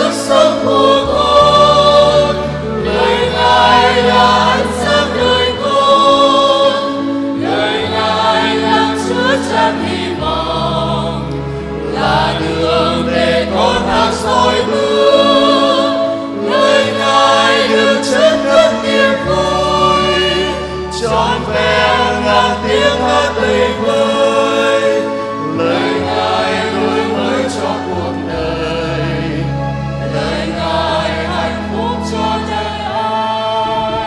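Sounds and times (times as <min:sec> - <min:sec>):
choir singing a hymn: 0:00.0 - 0:34.0
instrumental accompaniment: 0:00.0 - 0:34.0
sustained bass notes: 0:00.0 - 0:34.0.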